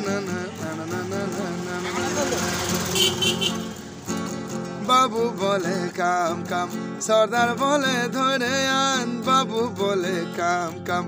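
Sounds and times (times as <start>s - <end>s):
person singing: 0.0s - 2.8s, 4.6s - 11.0s
acoustic guitar strumming: 0.0s - 11.0s.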